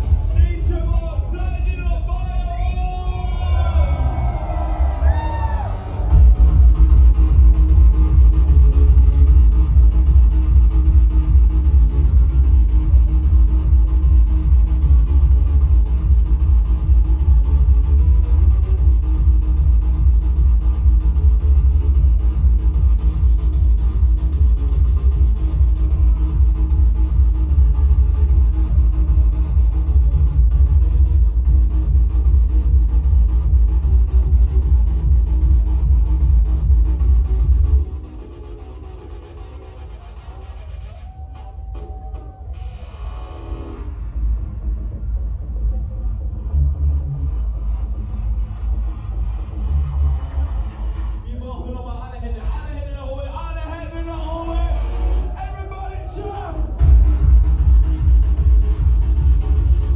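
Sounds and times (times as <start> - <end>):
electronic dance music: 0.0 - 59.9
heavy bass beat: 0.0 - 59.9.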